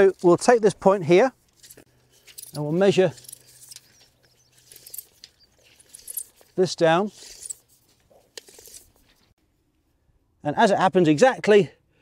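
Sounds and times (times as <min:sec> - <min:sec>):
tape measure clicking and rattling: 0:01.5 - 0:09.1.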